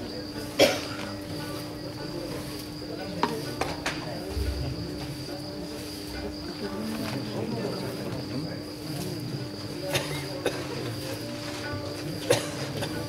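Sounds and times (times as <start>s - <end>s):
faint murmur of voices: 0.0s - 13.0s
steady low hum: 4.1s - 6.9s.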